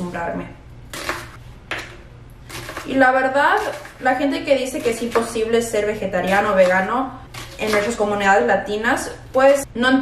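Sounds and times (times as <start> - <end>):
knife chopping on plastic board: 4.8 - 8.0.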